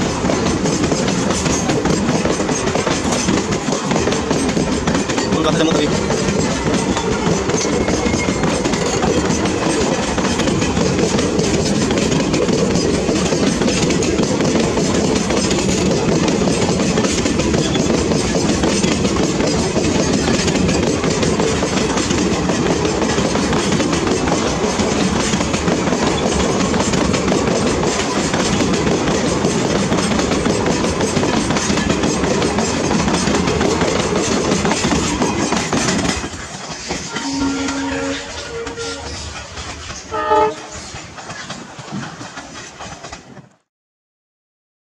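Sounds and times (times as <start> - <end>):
train wheels rumbling on rails: 0.0 - 43.7.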